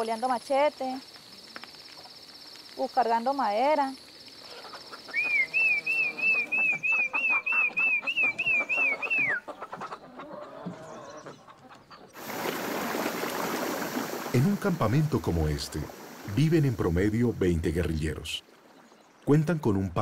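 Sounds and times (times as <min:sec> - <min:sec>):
insect buzz: 0:00.0 - 0:09.2, 0:12.2 - 0:17.6
bird warbling call: 0:04.4 - 0:12.1
hen clucking: 0:04.4 - 0:12.2
small waterfall rushing: 0:12.2 - 0:15.2.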